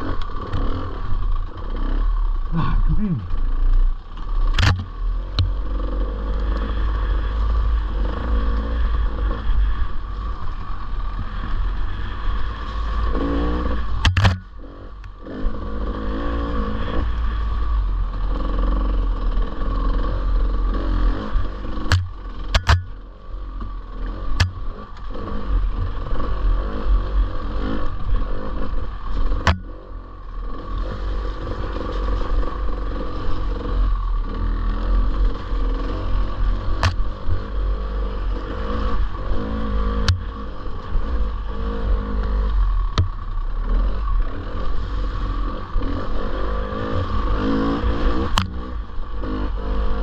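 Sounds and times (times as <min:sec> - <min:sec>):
dirt bike engine revving: 0:00.0 - 0:50.0.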